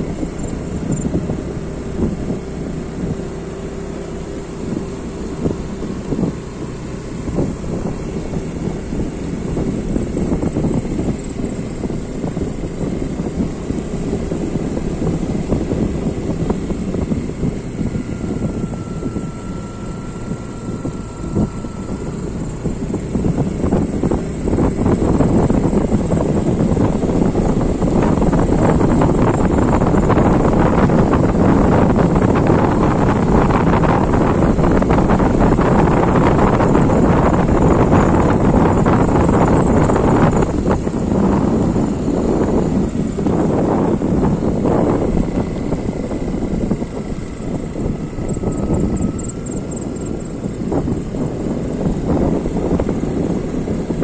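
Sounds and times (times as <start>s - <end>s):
vehicle engine and tyre noise: 0.0s - 54.0s
wind rushing over microphone: 0.0s - 54.0s.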